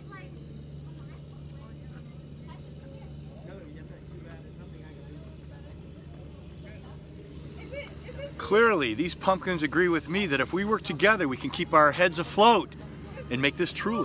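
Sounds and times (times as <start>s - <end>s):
distant voices: 0.0s - 14.0s
low mechanical hum: 0.0s - 14.0s.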